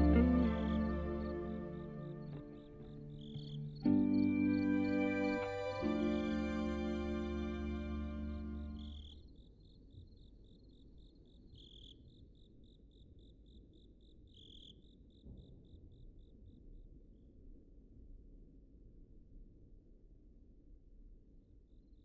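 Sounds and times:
background music: 0.0 - 9.0
faint low ambient rumble: 0.0 - 9.4
cricket chirping: 0.0 - 15.5.

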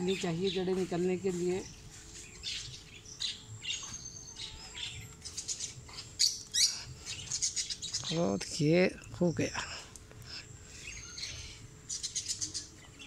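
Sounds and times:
birds chirping: 0.0 - 13.0.

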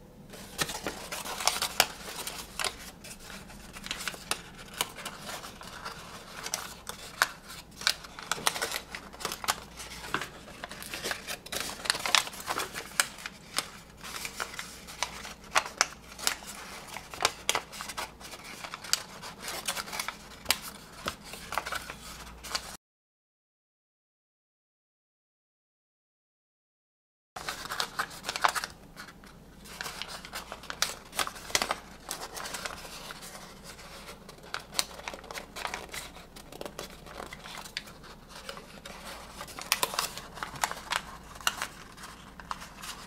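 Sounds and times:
paper crackling and rustling: 0.3 - 22.8, 27.4 - 43.0.

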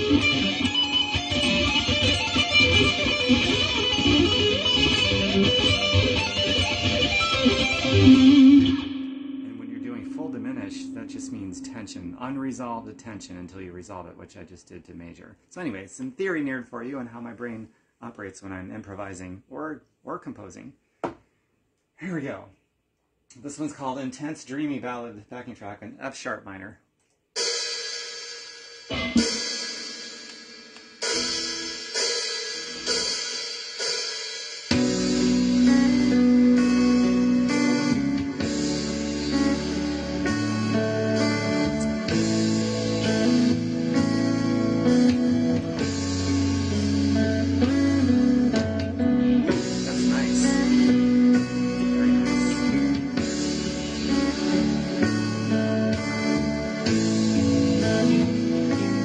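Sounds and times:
electric guitar improvising: 0.0 - 13.6, 28.9 - 29.5, 34.7 - 59.0
ringing chords: 7.4 - 13.6
band with drums and bass: 37.5 - 59.0.

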